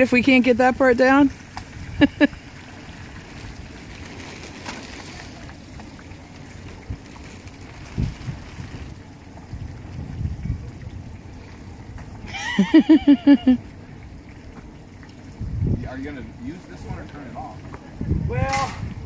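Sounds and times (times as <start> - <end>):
oil bubbling and rushing: 0.0 - 19.0.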